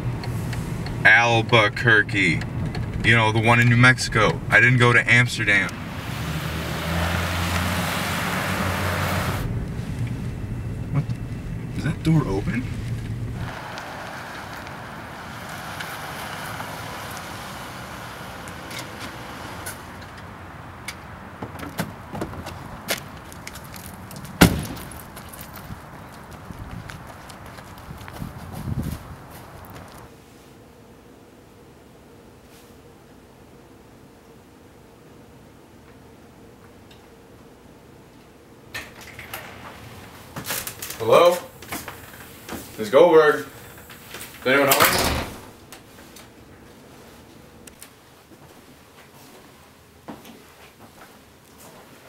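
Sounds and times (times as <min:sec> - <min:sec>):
street noise hiss: 0:00.0 - 0:52.0
car door slamming: 0:24.4 - 0:25.1
glass door rattling open: 0:38.8 - 0:41.0, 0:43.4 - 0:45.6.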